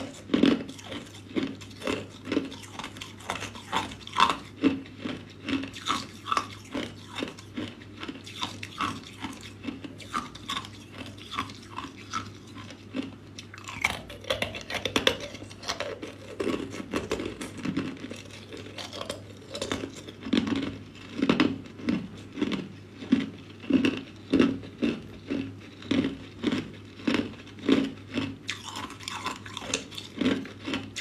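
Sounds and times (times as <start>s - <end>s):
ice cubes being chewed: 0.0s - 31.0s.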